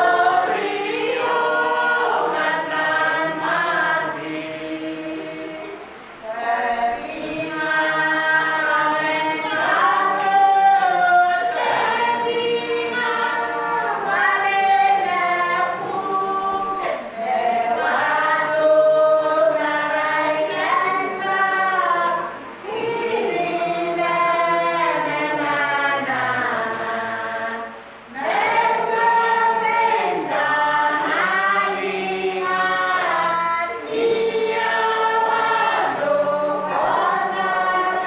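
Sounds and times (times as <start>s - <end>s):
congregation singing a hymn: 0.0s - 38.0s.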